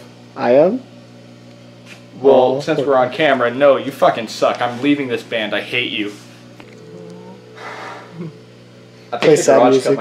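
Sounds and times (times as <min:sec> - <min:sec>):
steady low electrical hum: 0:00.0 - 0:10.0.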